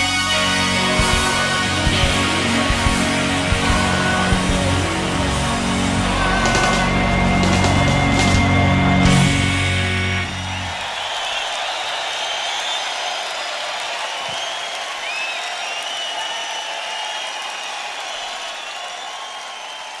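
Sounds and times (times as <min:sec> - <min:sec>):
band final chord: 0:00.0 - 0:10.8
crowd cheering and applauding: 0:00.0 - 0:20.0
whistles from crowd: 0:09.7 - 0:20.0.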